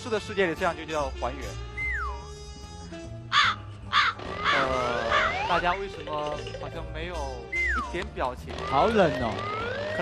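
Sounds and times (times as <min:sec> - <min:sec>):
crow cawing sound effect: 0:03.3 - 0:05.5.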